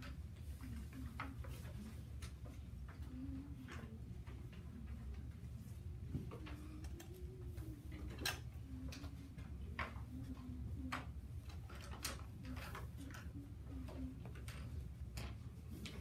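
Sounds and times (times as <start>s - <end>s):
low room hum: 0.0s - 16.0s
pencils tapping on desks: 0.0s - 16.0s.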